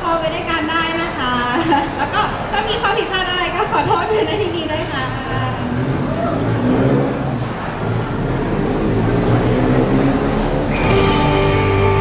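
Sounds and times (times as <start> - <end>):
busy venue crowd murmur: 0.0 - 12.0.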